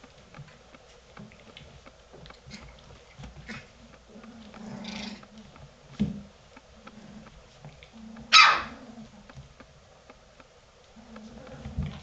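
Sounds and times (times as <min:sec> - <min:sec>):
low puppy growls: 0:03.5 - 0:05.6, 0:06.8 - 0:09.3, 0:11.0 - 0:12.0
puppy barking: 0:08.3 - 0:08.8.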